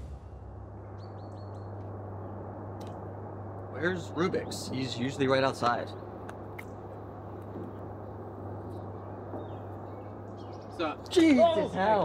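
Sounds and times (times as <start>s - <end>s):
steady low hum: 0.0s - 11.1s
bird chirping: 0.8s - 1.8s, 7.7s - 11.1s.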